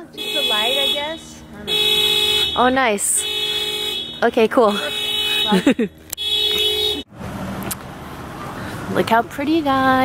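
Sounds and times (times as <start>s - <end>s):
street noise hum: 0.0s - 10.0s.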